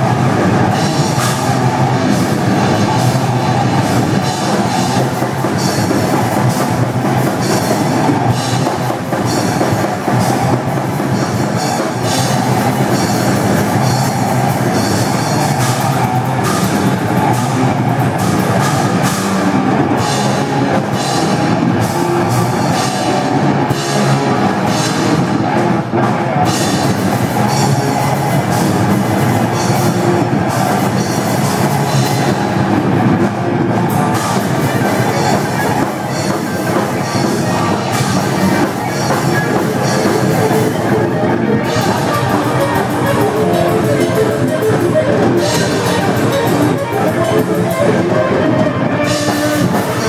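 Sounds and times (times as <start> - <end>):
distorted electric guitars: 0.0 - 50.0
drums: 0.0 - 50.0
metal band playing live: 0.0 - 50.0.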